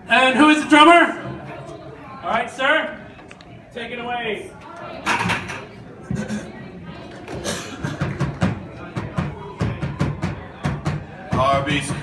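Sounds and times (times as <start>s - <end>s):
hand drumming on plastic bucket: 8.0s - 12.0s.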